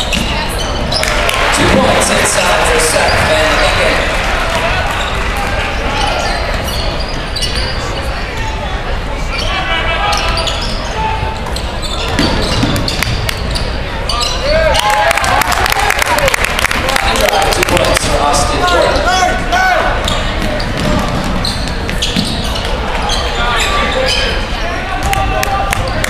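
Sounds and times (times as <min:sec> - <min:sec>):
sneakers squeaking on court: 0:00.0 - 0:01.2, 0:02.9 - 0:03.8, 0:05.8 - 0:08.6, 0:09.3 - 0:14.5, 0:20.0 - 0:25.1
crowd chatter: 0:00.0 - 0:26.0.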